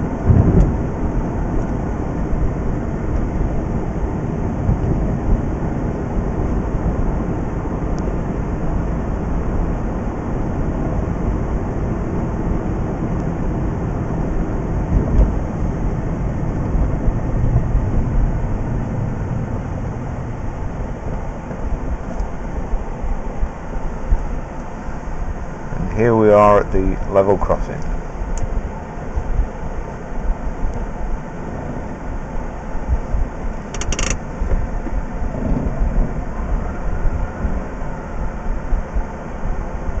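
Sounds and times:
car cabin road rumble: 0:00.0 - 0:40.0.

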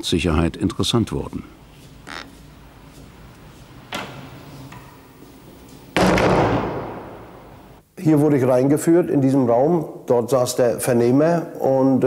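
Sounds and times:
door slamming shut: 0:03.9 - 0:04.4, 0:06.0 - 0:07.6.

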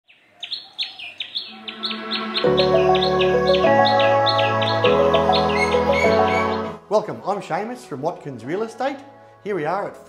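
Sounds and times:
bird chirping: 0:00.1 - 0:06.8
low steady note: 0:01.5 - 0:04.3.

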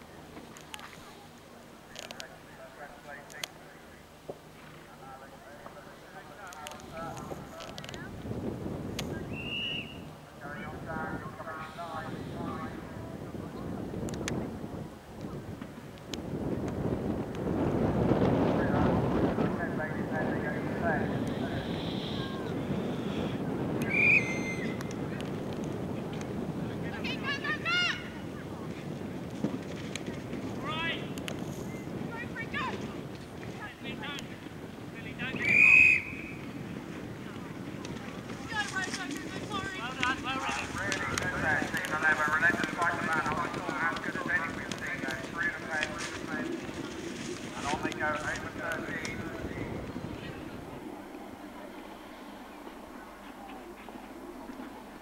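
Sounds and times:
wind buffeting microphone: 0:05.8 - 0:55.0
hoofbeats on turf: 0:36.4 - 0:50.5.

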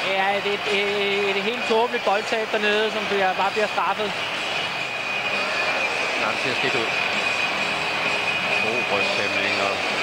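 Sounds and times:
stadium crowd roar: 0:00.0 - 0:10.0
thin steady high tone: 0:02.8 - 0:10.0.

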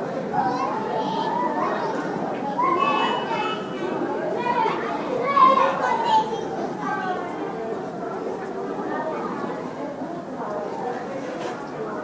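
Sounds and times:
children babbling: 0:00.2 - 0:07.2.

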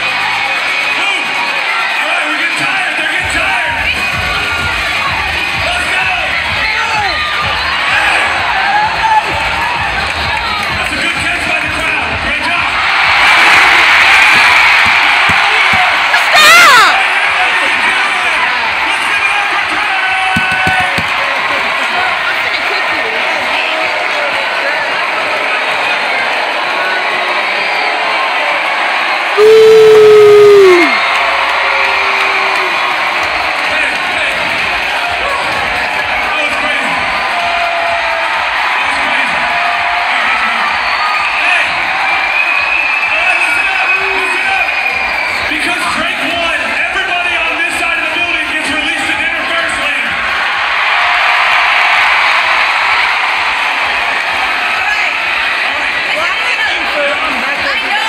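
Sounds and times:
crowd cheering and shouting: 0:00.0 - 0:58.0
falling yell: 0:29.4 - 0:31.0
rising whoop: 0:29.4 - 0:31.1.

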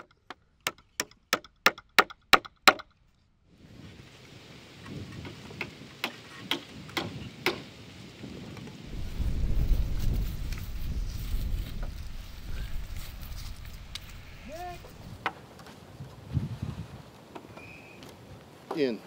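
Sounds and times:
mallet striking timber: 0:00.0 - 0:02.9
loud low rumble: 0:08.9 - 0:15.2.

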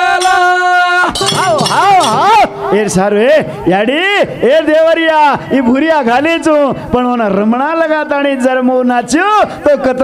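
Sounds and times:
metallic hand percussion clinking: 0:00.0 - 0:03.6.

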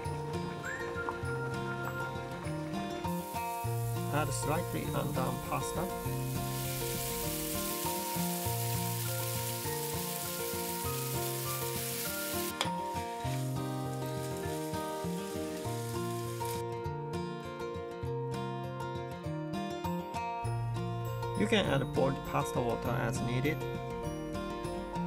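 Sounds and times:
background music with melody: 0:00.0 - 0:25.0
spaghetti sizzling in frying pan: 0:03.0 - 0:16.6.

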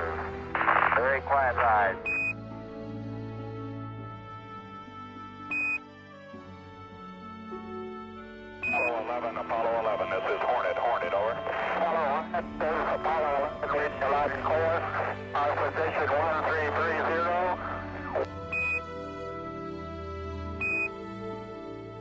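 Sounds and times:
voices over radio link: 0:00.0 - 0:02.1, 0:08.7 - 0:18.3
background music: 0:00.0 - 0:22.0.

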